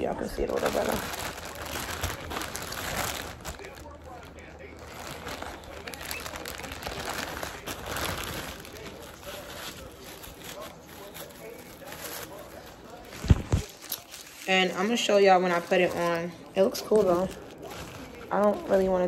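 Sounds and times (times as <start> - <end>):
plastic bag rustling and crinkling: 0.0 - 19.0.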